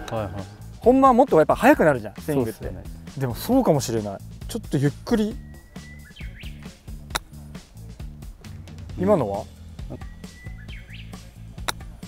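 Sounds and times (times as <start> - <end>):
background music: 0.0 - 12.0
bird chirping: 4.6 - 12.0
golf club striking ball: 5.8 - 8.8, 11.2 - 12.0.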